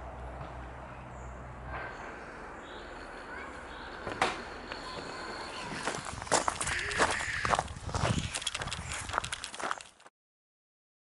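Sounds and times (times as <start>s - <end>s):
footsteps on a path: 3.7s - 10.1s.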